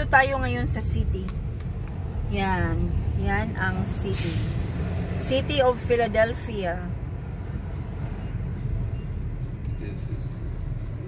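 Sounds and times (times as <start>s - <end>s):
car rumble from inside cabin: 0.0s - 11.0s.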